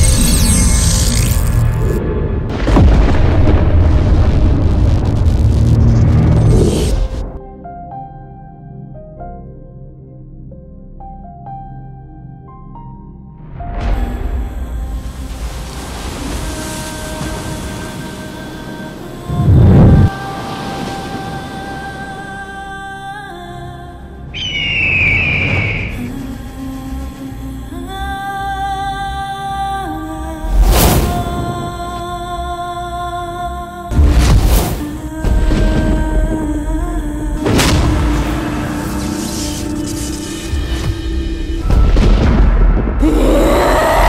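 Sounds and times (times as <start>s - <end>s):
rush of noise: 0.0s - 7.4s, 19.3s - 22.1s
low hum: 0.0s - 7.6s
high whistling tone sliding down: 24.4s - 26.1s.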